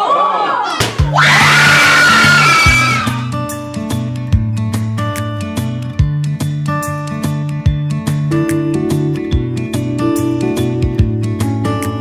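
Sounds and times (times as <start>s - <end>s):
excited voices: 0.0s - 3.3s
people screaming and cheering: 0.0s - 3.4s.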